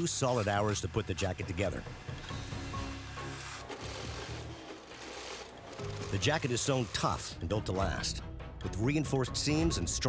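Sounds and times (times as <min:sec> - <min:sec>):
background music: 0:00.0 - 0:10.0
sewing machine stitching: 0:02.0 - 0:07.3.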